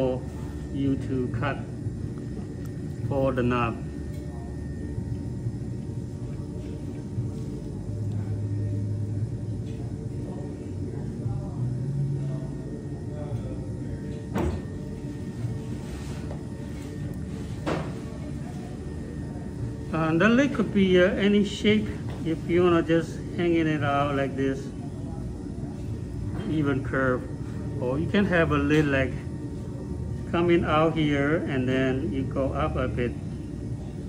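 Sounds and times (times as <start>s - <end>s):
potter's wheel motor humming: 0.0s - 34.0s.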